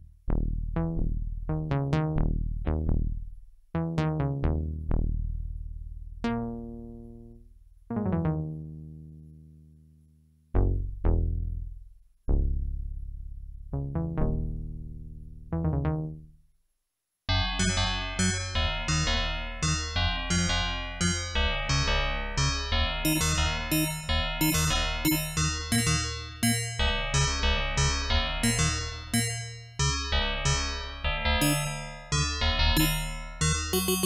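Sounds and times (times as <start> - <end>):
sustained synth bass notes: 0.0 - 9.2, 10.6 - 16.3, 17.3 - 34.0
synthesizer keyboard notes: 6.2 - 9.1, 17.3 - 34.0.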